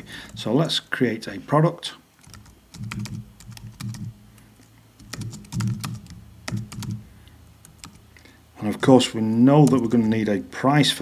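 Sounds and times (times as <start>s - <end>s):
computer keyboard typing: 2.2s - 4.2s, 5.0s - 7.0s, 7.6s - 8.0s, 9.6s - 10.1s.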